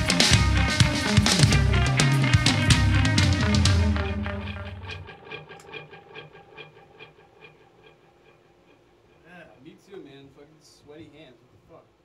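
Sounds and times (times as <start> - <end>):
metal band playing: 0.0 - 9.6.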